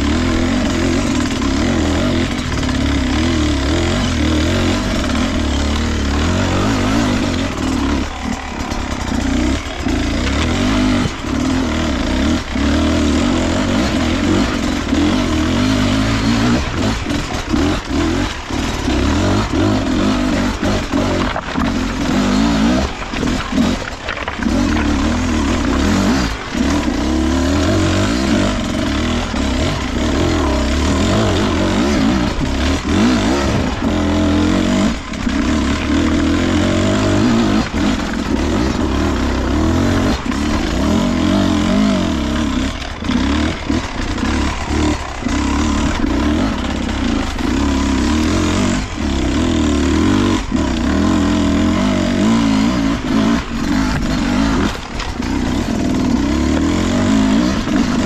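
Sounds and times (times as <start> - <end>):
two-stroke motorbike engine under load: 0.0 - 58.0.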